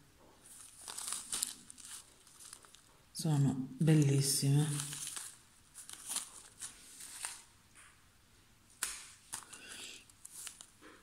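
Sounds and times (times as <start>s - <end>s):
plastic bag crinkling: 0.4s - 3.0s, 4.1s - 7.6s, 9.2s - 11.0s.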